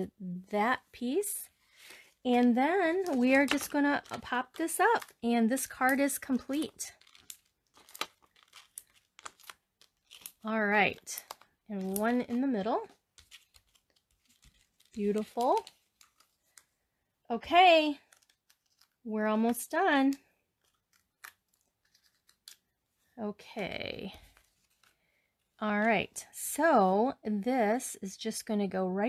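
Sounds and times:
cardstock and paper rustling: 0.6s - 27.0s.

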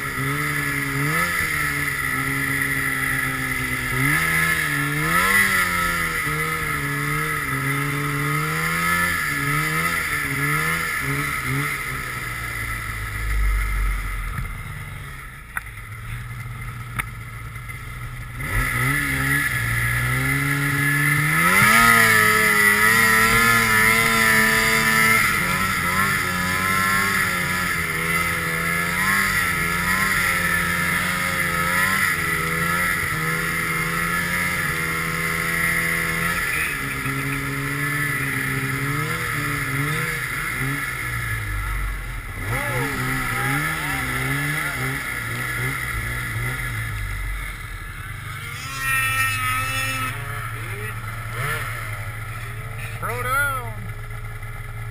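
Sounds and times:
snowmobile engine revving: 0.0s - 15.2s, 17.6s - 54.9s.

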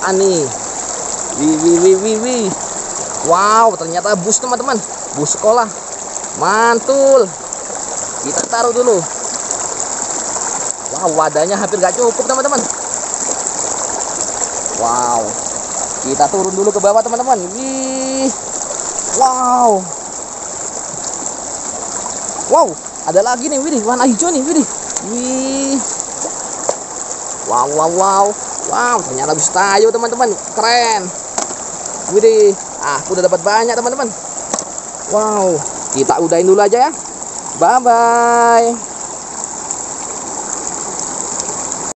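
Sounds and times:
stream rushing over rocks: 0.0s - 42.0s.

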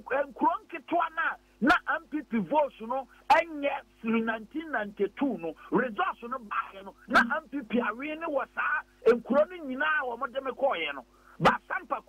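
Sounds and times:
man talking over telephone: 0.0s - 12.0s.

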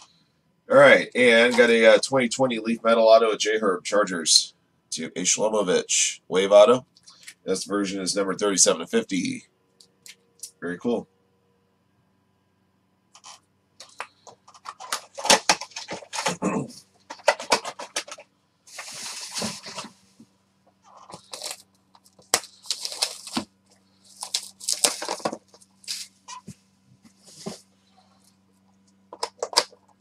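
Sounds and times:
cardboard boxes sliding and scraping: 18.7s - 20.0s.

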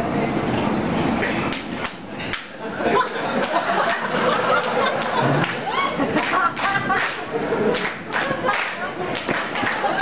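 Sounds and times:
theatre audience laughing: 2.6s - 10.0s.

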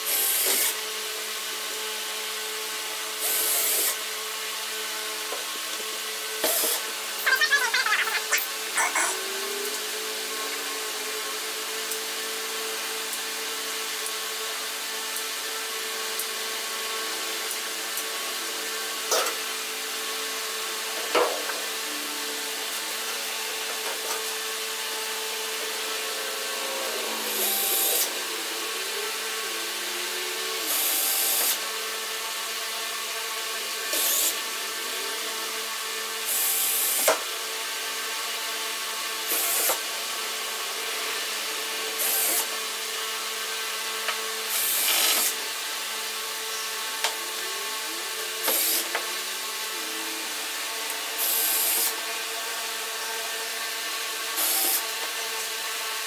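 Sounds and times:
cordless drill drilling into metal: 0.0s - 0.8s, 3.2s - 4.0s, 6.4s - 7.9s, 27.3s - 28.2s, 30.6s - 31.6s, 33.9s - 34.4s, 36.2s - 37.2s, 39.2s - 39.8s, 42.0s - 42.6s, 44.5s - 45.4s, 48.4s - 49.0s, 51.2s - 52.1s, 54.1s - 55.6s
box fan humming: 21.6s - 32.6s.

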